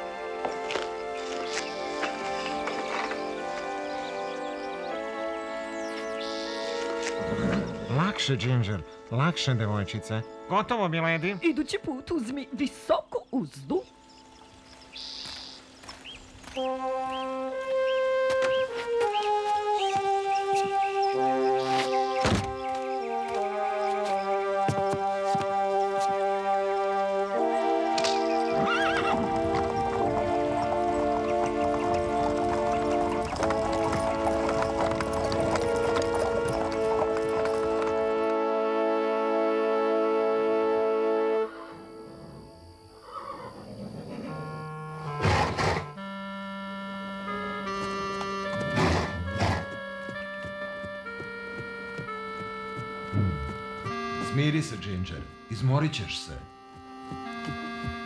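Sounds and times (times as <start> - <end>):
background music with held notes: 0.0 - 58.0
horse snorts: 7.2 - 7.9, 43.1 - 44.4, 45.2 - 46.0, 48.6 - 49.7
cartoon horse whinnying: 28.5 - 29.3.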